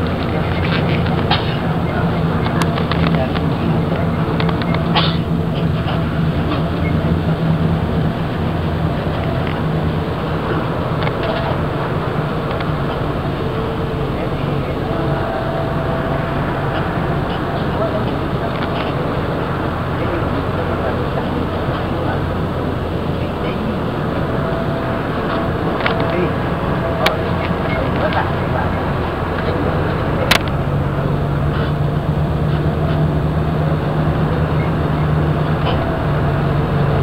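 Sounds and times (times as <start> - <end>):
bus engine drone: 0.0 - 37.0.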